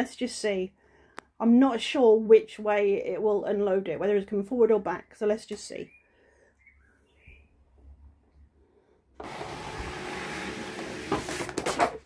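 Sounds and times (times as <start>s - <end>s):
cutting machine rollers running: 9.2s - 12.0s.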